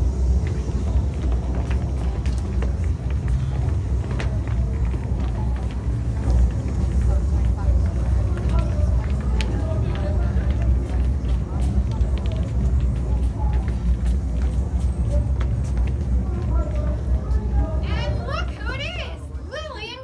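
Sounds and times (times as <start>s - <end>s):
murmur of voices: 0.0s - 20.0s
traffic rumble: 0.0s - 20.0s
shoes clicking on wooden floor: 0.2s - 18.9s.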